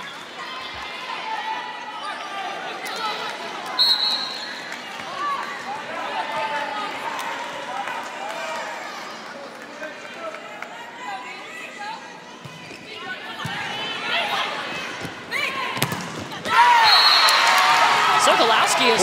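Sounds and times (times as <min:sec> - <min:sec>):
crowd cheering and shouting: 0:13.4 - 0:19.0
volleyball hits: 0:15.0 - 0:17.9
players calling out: 0:16.4 - 0:19.0.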